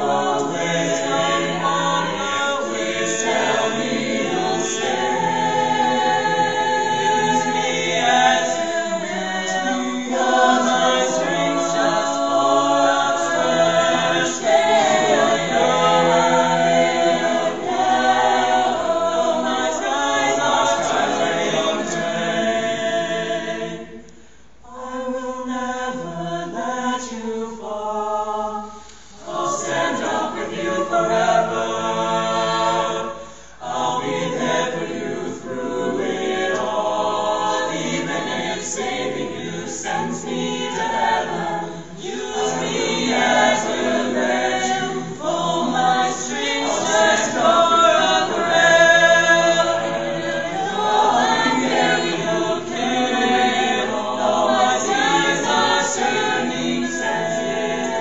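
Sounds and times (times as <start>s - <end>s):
a cappella group singing: 0.0s - 58.0s.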